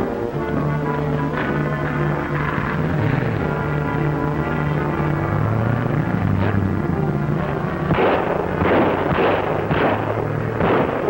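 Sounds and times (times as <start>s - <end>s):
background music: 0.0s - 11.0s
pistol shots: 7.8s - 11.0s.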